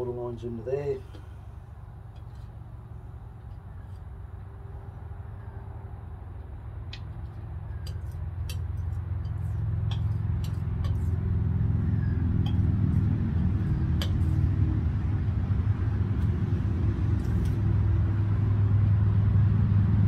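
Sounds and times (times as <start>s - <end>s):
motor engine running: 7.2s - 20.0s.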